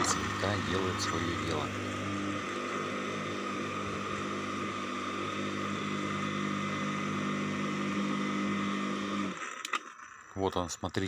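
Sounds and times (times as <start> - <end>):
garden shredder motor running: 0.0 - 10.4.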